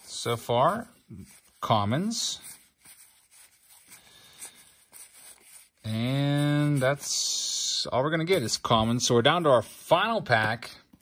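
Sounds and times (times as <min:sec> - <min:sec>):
cardboard cards rustling: 0:00.1 - 0:07.2.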